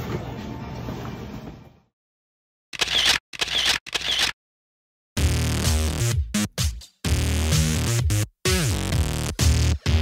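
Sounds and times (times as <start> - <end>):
camera shutter clicks: 2.8 - 4.4.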